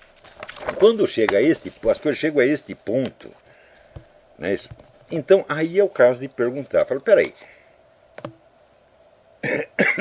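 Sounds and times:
man coughing: 9.4 - 10.0.

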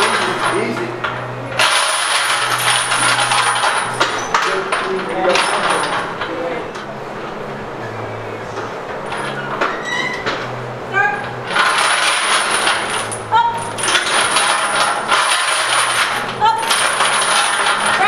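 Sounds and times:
heavy chains jangling: 1.6 - 6.2, 11.5 - 18.0.

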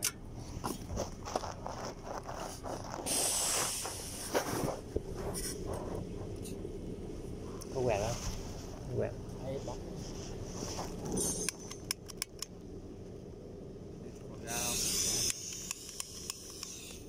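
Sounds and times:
sharp hiss: 3.0 - 5.6, 14.5 - 17.0.

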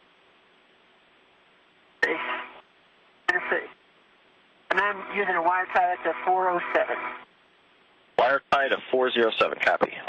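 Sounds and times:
faint radio hiss: 0.0 - 10.0
speech over radio: 3.3 - 3.8, 4.7 - 7.1.

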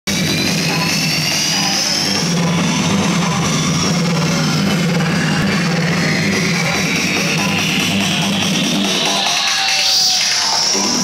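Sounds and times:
loud psytrance dance music: 0.1 - 11.0.

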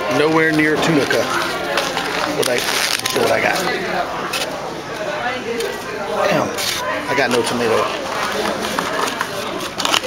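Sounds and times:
people talking indistinctly: 0.0 - 9.9.

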